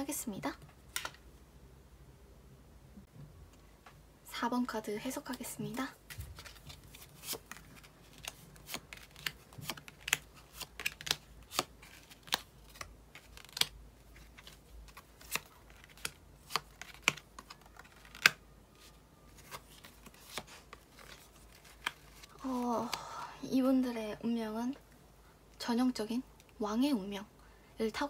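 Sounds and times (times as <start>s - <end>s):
cards snapping and tapping: 7.2s - 13.7s, 14.9s - 18.4s.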